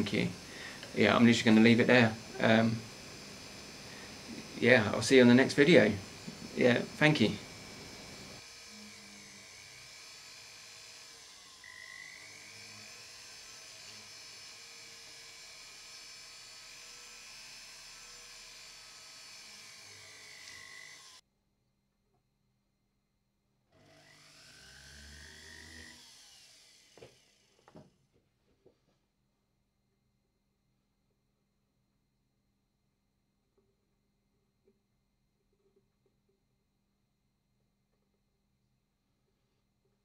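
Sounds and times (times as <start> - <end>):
polishing wheel on metal ring: 0.0 - 9.5
rotary tool motor whine: 0.0 - 21.2, 23.8 - 27.9.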